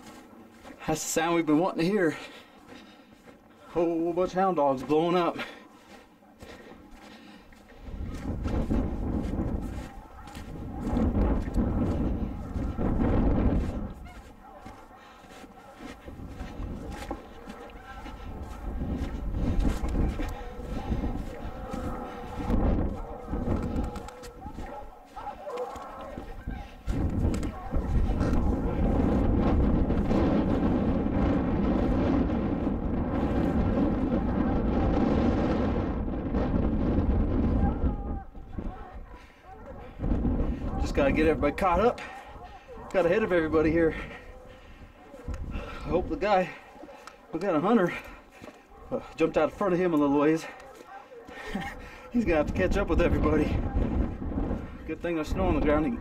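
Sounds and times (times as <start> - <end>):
distant hounds baying: 0.0 - 56.0
wind rumble on microphone: 6.6 - 56.0.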